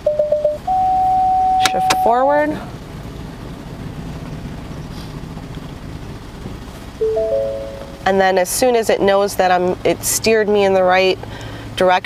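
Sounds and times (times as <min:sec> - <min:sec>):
car cabin hum: 0:00.2 - 0:04.6, 0:05.4 - 0:08.8
rising three-note chime: 0:07.0 - 0:08.1.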